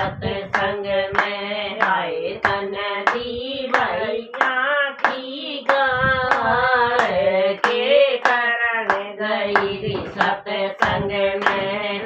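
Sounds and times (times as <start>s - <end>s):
steady hand claps: 0.0s - 12.0s
women singing unaccompanied: 0.0s - 12.0s.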